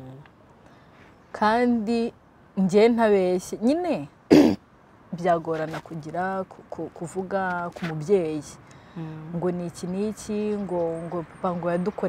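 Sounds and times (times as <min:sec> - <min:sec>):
woman talking: 0:01.4 - 0:04.4, 0:05.1 - 0:12.0
short cough: 0:04.3 - 0:04.6.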